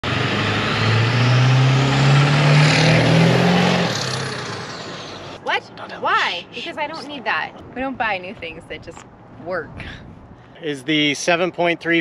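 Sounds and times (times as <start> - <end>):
diesel truck accelerating past: 0.0 - 5.4
tyre and road noise: 0.0 - 12.0.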